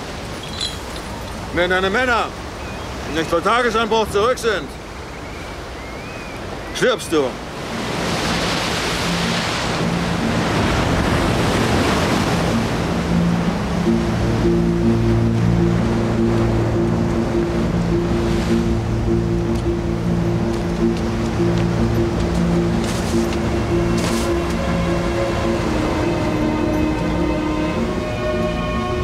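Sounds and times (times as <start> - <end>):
sea waves washing on shore: 0.0 - 29.0
low held film score notes: 8.9 - 29.0.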